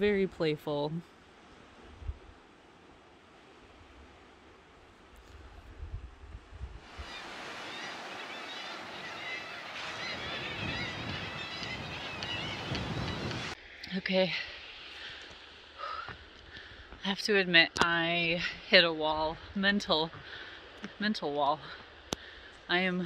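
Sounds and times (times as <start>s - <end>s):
wind buffeting microphone: 5.4s - 8.1s, 9.6s - 13.6s
sea surf: 6.8s - 16.8s
seabird colony calling: 6.9s - 13.6s.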